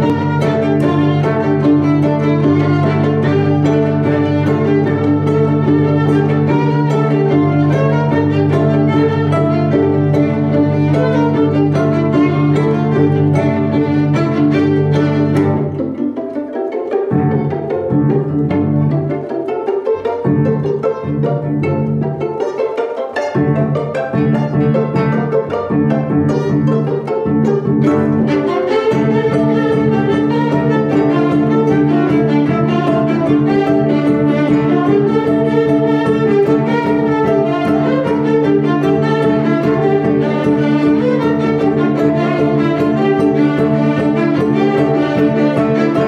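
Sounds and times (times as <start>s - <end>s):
string quartet playing: 0.0s - 46.0s.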